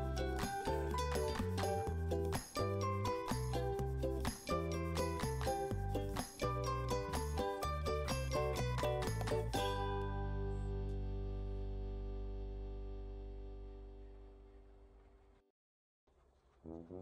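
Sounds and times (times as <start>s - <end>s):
background music: 0.0s - 14.8s.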